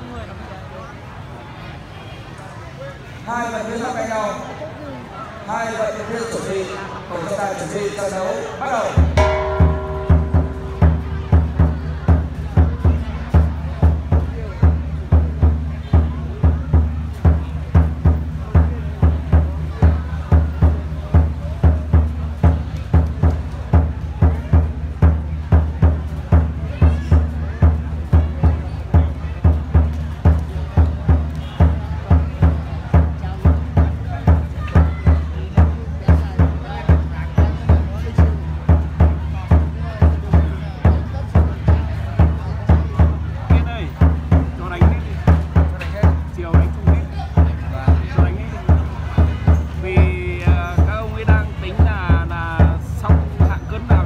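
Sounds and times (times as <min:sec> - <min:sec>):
crowd chatter: 0:00.0 - 0:54.0
drum beaten in steady rhythm: 0:08.6 - 0:54.0.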